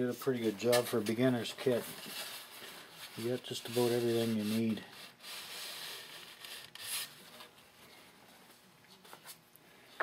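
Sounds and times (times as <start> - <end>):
balsa wood scraping: 0.6 - 7.5.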